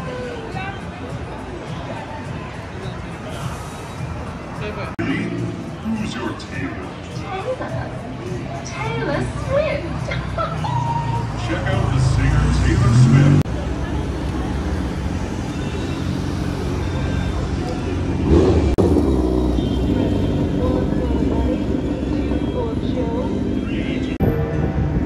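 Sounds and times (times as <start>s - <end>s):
street noise: 0.0s - 25.0s
motorcycle engine running: 16.0s - 24.2s.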